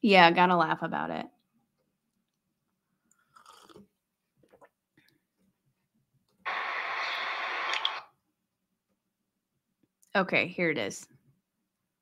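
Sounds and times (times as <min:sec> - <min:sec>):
sip and swallow from mug: 0:03.1 - 0:04.8.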